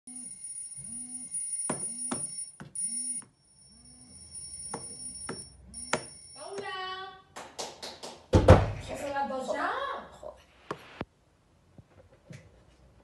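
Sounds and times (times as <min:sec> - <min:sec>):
smartphone alarm ringing: 0:00.1 - 0:06.8.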